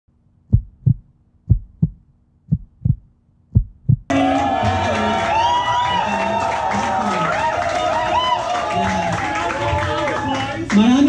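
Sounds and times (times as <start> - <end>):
heartbeat thumps: 0.4 - 4.1
loud music: 4.1 - 7.4.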